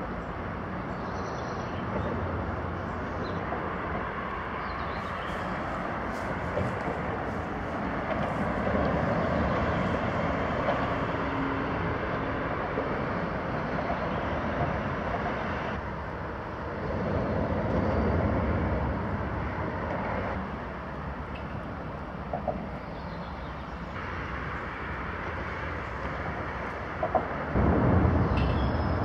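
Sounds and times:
road traffic passing: 0:00.0 - 0:29.0.

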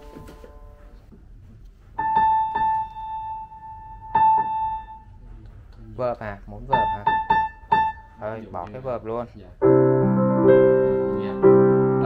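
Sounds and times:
piano high note: 0:02.0 - 0:05.1, 0:09.6 - 0:12.0.

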